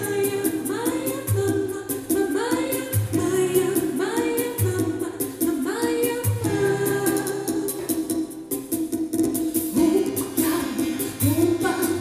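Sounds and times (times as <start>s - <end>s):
woman singing into microphone: 0.0s - 8.4s, 9.7s - 12.0s
backing track with steady beat: 0.0s - 12.0s.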